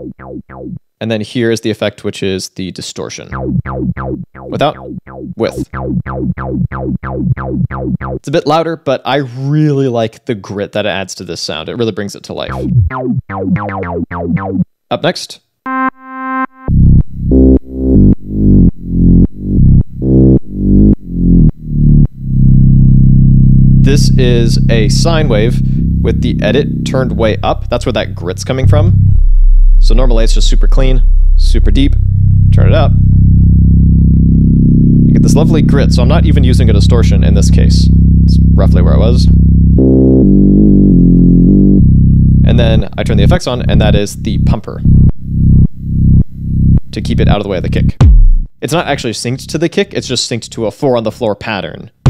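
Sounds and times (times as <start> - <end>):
gritty synth sub bass: 0.0 - 0.9, 3.3 - 8.3, 12.5 - 14.6, 16.7 - 48.5.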